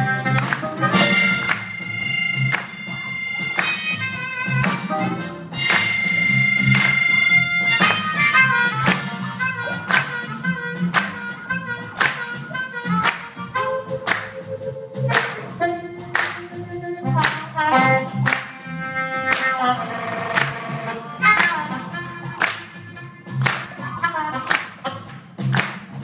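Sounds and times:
blues harmonica: 0:00.0 - 0:25.6
live blues band playing: 0:00.0 - 0:26.0.

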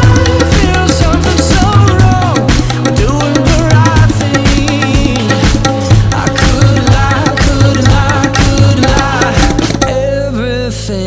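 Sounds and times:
tabla strokes: 0:00.0 - 0:10.2
recorded pop song: 0:00.0 - 0:11.0
wavering vocal line: 0:00.0 - 0:11.0.

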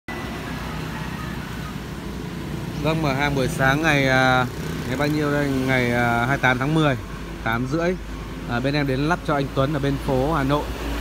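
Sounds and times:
drone of passing traffic: 0:00.1 - 0:11.0.

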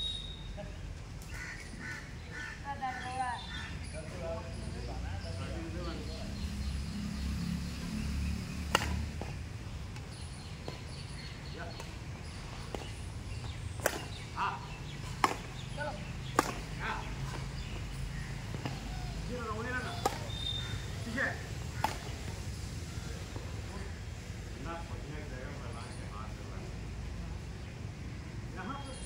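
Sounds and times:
racket hitting shuttlecock: 0:08.6 - 0:09.4, 0:13.8 - 0:14.2, 0:15.2 - 0:15.6, 0:16.2 - 0:17.5, 0:18.4 - 0:18.9, 0:19.6 - 0:20.4, 0:21.7 - 0:22.4.

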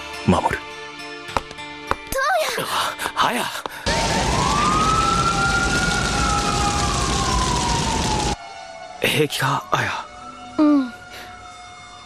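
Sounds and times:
building fire roaring: 0:03.8 - 0:08.4
siren wailing: 0:03.9 - 0:12.0.

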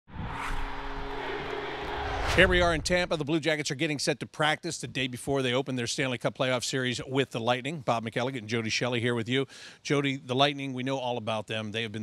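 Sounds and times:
low held tones: 0:00.1 - 0:03.3
rushing whoosh: 0:00.1 - 0:03.3.

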